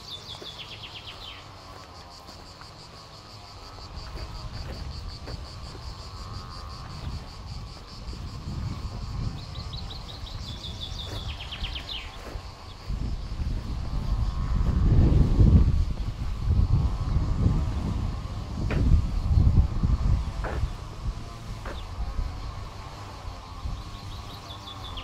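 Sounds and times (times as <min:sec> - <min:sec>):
bird chirping: 0:00.0 - 0:01.7, 0:09.2 - 0:13.3, 0:23.7 - 0:25.0
faint insect drone: 0:00.0 - 0:25.0
wind gusting on microphone: 0:02.4 - 0:25.0.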